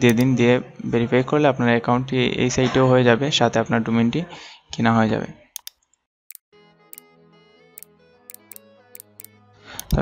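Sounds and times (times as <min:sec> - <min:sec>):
person speaking: 0:00.0 - 0:00.4, 0:08.3 - 0:10.0
computer mouse clicks: 0:07.8 - 0:10.0.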